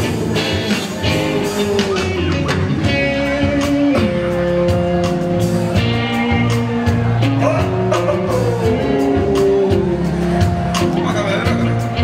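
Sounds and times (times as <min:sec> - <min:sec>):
rock band playing live: 0:00.0 - 0:12.0.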